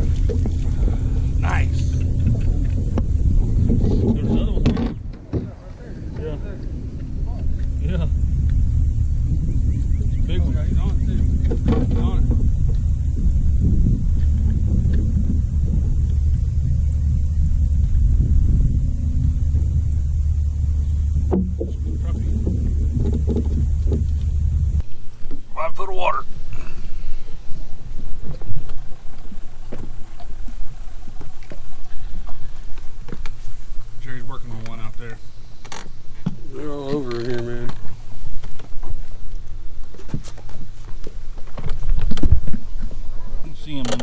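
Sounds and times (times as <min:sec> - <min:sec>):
small knocks on boat: 0:00.0 - 0:00.7, 0:01.9 - 0:06.4, 0:10.8 - 0:12.8, 0:21.2 - 0:24.4
faint voices: 0:00.0 - 0:12.5
electric trolling motor humming: 0:00.0 - 0:25.4.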